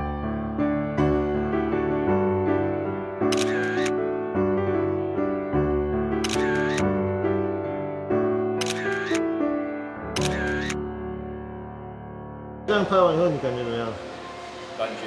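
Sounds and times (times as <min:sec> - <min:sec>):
background music sustained notes: 0:00.0 - 0:15.0
camera shutter click: 0:03.3 - 0:04.0, 0:06.2 - 0:06.9, 0:08.6 - 0:09.2, 0:10.2 - 0:10.8.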